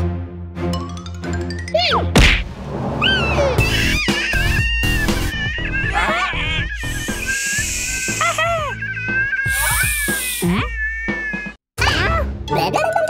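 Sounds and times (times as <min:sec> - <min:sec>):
cartoon background music: 0:00.0 - 0:02.4, 0:03.0 - 0:13.0
whining straining vocal noises: 0:03.0 - 0:11.6.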